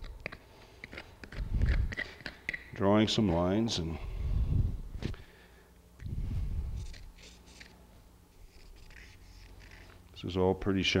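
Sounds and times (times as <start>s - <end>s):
marker scratching on hoof: 6.8s - 7.8s, 8.4s - 10.0s.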